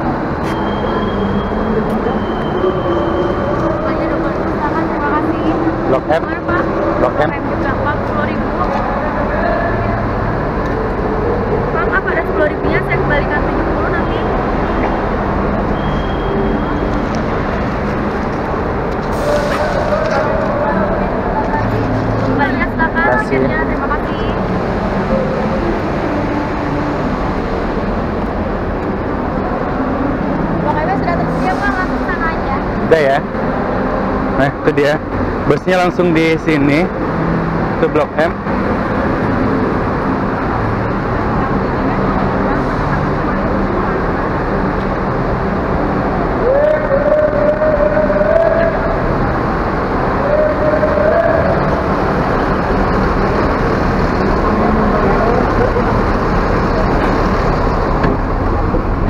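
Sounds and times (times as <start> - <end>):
people talking at once: 19.2 - 25.6.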